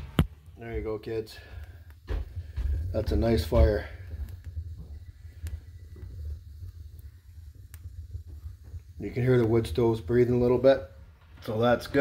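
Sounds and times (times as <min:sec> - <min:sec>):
logs crackling: 0:00.0 - 0:12.0
stove draft rumbling: 0:00.0 - 0:12.0.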